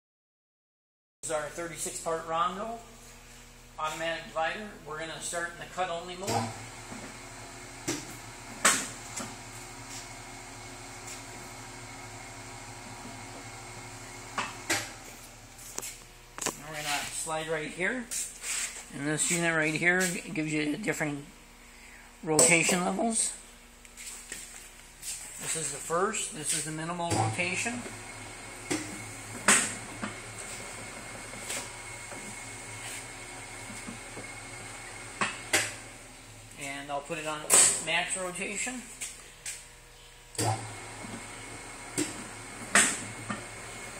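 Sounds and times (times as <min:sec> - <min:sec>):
machine motor hum: 0:06.2 - 0:17.8, 0:25.4 - 0:38.7, 0:40.3 - 0:43.9.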